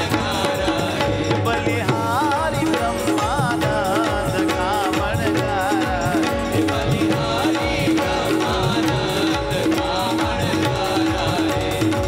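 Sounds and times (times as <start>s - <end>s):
instrumental accompaniment: 0.0s - 12.0s
solo voice singing devotional song: 0.0s - 12.0s.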